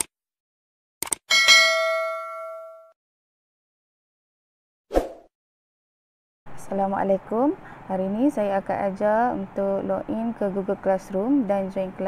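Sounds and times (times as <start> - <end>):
bell ding: 1.3 - 3.0.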